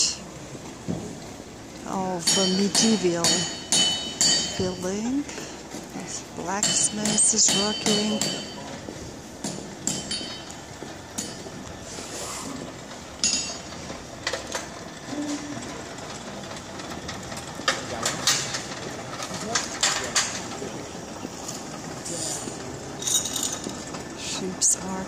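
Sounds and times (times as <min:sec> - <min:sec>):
indistinct voices: 0:01.8 - 0:08.9
clinks and knocks of tools: 0:02.2 - 0:05.9, 0:06.6 - 0:11.8, 0:12.6 - 0:14.8, 0:16.5 - 0:20.8, 0:22.5 - 0:24.1.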